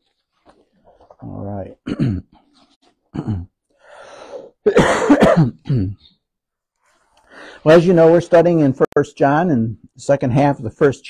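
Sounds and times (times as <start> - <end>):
man coughing: 1.8 - 2.4, 3.1 - 3.6, 4.5 - 6.2
breath in: 3.7 - 4.6, 7.2 - 7.6.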